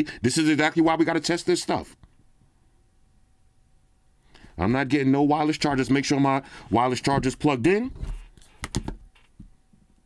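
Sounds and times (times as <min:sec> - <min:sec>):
phone clicks and taps: 0:08.6 - 0:09.5.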